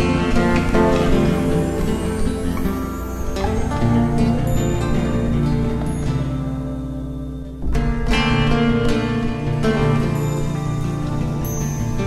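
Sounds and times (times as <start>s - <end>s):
plucked nylon-string guitar: 0.0s - 12.0s.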